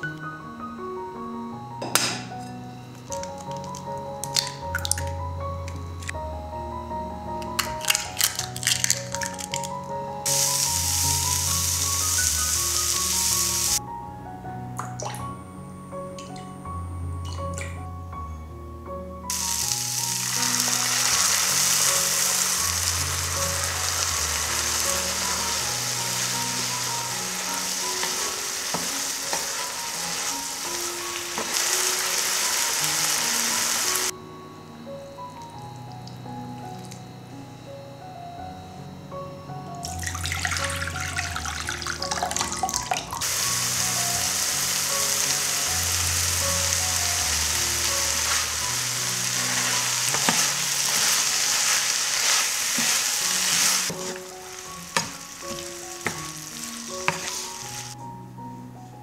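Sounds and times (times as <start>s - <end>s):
vegetables sizzling in frying pan: 10.2s - 13.8s, 19.3s - 34.1s, 43.2s - 58.0s.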